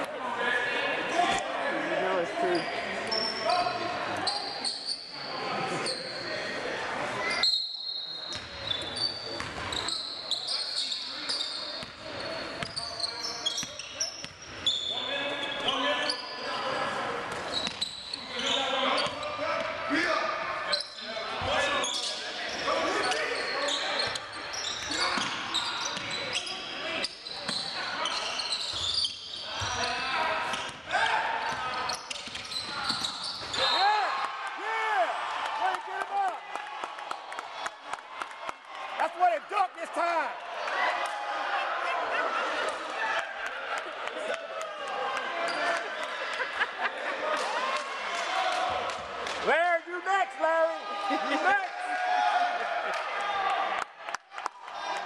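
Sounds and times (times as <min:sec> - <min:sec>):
sneakers squeaking: 0:02.2 - 0:06.5, 0:07.2 - 0:19.8, 0:20.6 - 0:34.3.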